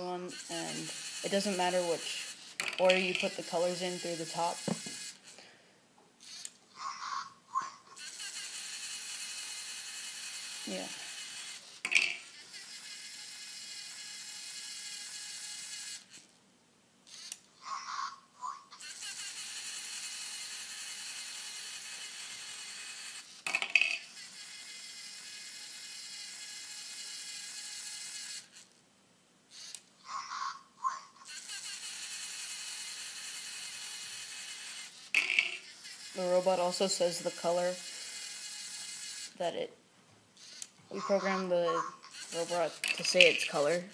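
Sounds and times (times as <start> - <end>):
robot motors whirring: 0.0 - 5.4, 6.2 - 7.0, 7.6 - 16.3, 17.1 - 28.7, 29.5 - 39.5, 40.4 - 43.9
robot synthesised voice: 40.9 - 43.8.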